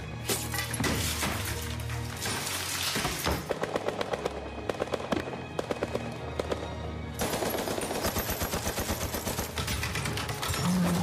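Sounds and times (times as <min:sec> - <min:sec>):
music: 0:00.0 - 0:11.0
rapid gunfire: 0:03.4 - 0:10.2.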